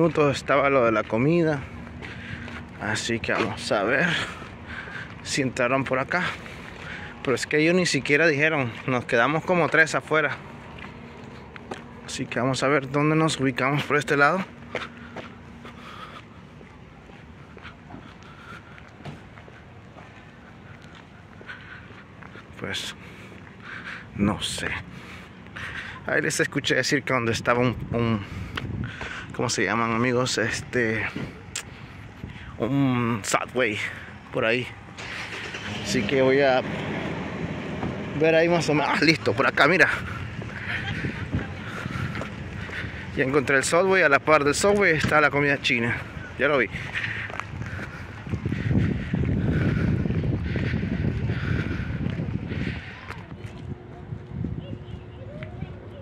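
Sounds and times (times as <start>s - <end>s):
footsteps on pavement: 0.0s - 35.8s, 36.8s - 56.0s
low steady rumble: 26.7s - 56.0s
wind on microphone: 27.8s - 29.0s, 40.2s - 43.1s, 46.1s - 56.0s.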